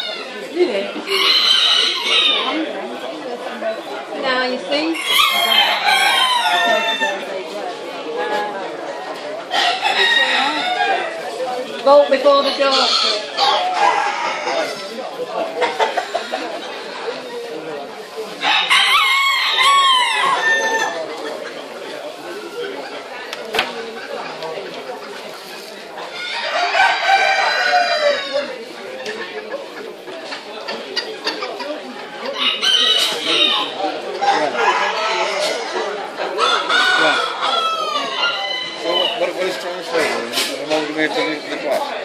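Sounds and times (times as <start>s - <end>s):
rooster crowing: 5.0s - 7.2s, 18.5s - 21.0s, 36.4s - 39.2s
cockerel crowing: 36.4s - 39.2s.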